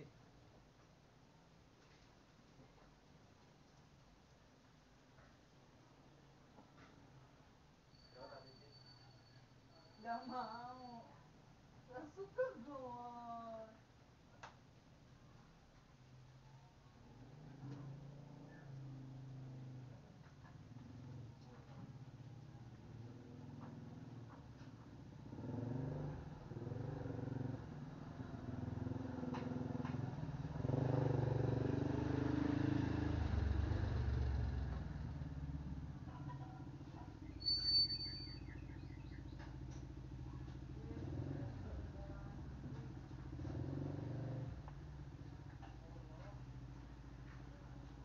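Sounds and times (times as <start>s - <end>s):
short high chirp: 37.2s - 39.3s.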